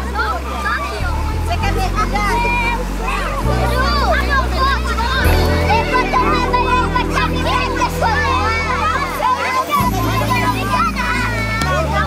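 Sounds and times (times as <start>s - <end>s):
children shouting and chattering: 0.0s - 12.0s
background music with bass line: 1.0s - 12.0s.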